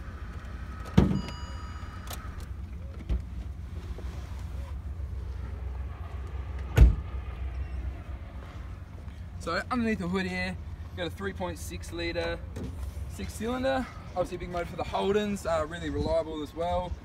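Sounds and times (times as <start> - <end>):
electronic warning chime: 1.2 - 2.2
car door shutting: 6.7 - 7.1.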